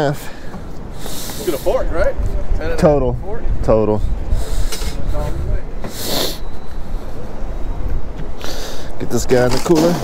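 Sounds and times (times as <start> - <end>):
wind rumbling on microphone: 0.5 - 10.0.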